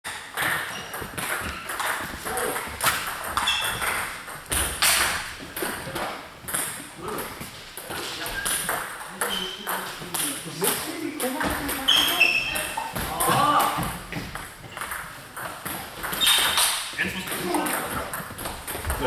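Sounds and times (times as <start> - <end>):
table tennis balls clicking: 0.1 - 19.0.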